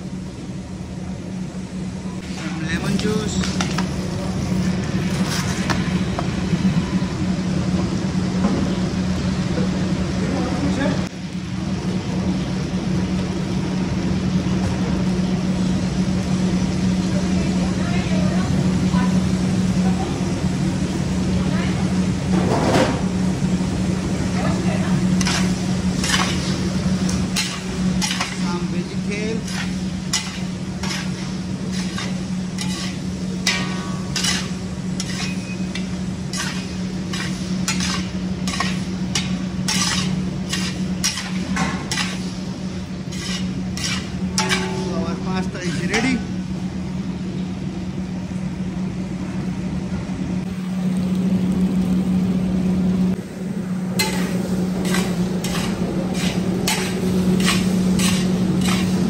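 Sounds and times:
steady low hum: 0.0 - 59.0
food sizzling in a wok: 1.4 - 47.0, 53.7 - 59.0
metal spatula scraping a pan: 25.2 - 26.6, 27.4 - 28.4, 29.4 - 42.3, 43.1 - 44.9, 54.0 - 59.0.

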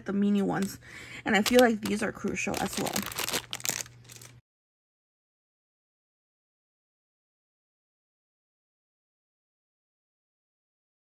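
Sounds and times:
plastic packaging crinkling: 1.3 - 4.4.

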